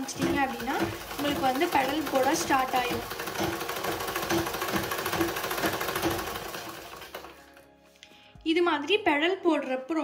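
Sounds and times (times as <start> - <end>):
sewing machine clattering: 0.0 - 7.6.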